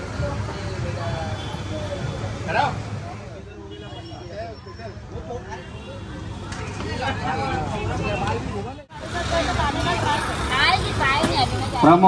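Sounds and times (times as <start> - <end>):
people talking: 0.0 - 12.0
street traffic rumble: 0.0 - 12.0.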